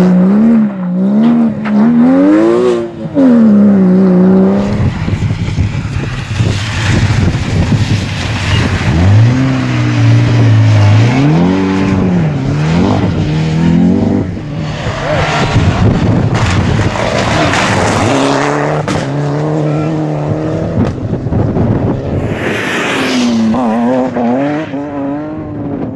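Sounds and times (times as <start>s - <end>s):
rally car engine revving: 0.0s - 25.9s.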